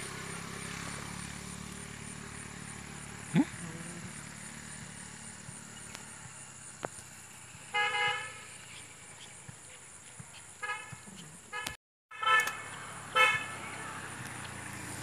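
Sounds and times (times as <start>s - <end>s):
outdoor background hum: 0.0s - 15.0s
horn toot: 7.7s - 8.5s, 10.6s - 14.2s.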